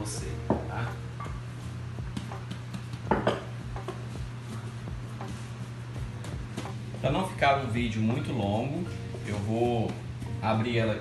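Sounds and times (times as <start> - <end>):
glass bowl knocking on countertop: 2.2 - 4.0.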